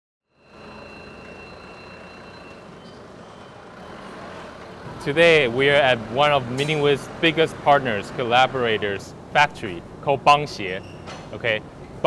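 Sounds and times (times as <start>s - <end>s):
high steady warning tone: 0.3s - 8.8s
forklift mechanical noise: 0.3s - 12.0s.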